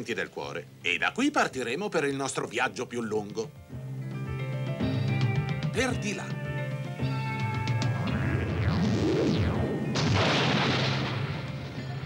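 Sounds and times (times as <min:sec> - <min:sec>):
background music: 0:00.0 - 0:12.0
cartoon boom with rushing noise: 0:08.2 - 0:11.5.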